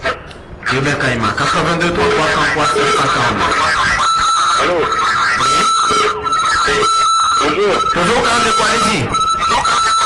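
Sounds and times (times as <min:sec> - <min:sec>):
high-pitched whine: 0:00.0 - 0:10.0
men talking: 0:00.0 - 0:10.0.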